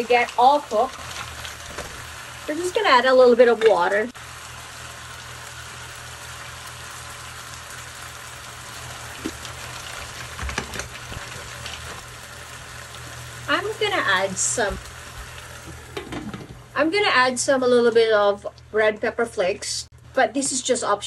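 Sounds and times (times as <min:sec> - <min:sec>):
mussels sizzling in a pan: 0:00.0 - 0:18.0.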